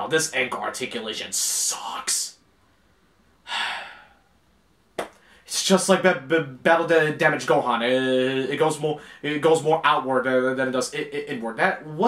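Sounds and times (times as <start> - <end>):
man sighing: 3.4 - 4.3.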